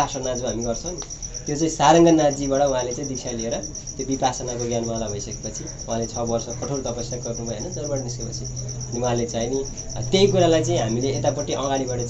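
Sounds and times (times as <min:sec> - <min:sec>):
insects chirping: 0:00.0 - 0:12.0
low steady hum: 0:00.0 - 0:12.0
man speaking: 0:00.0 - 0:12.0.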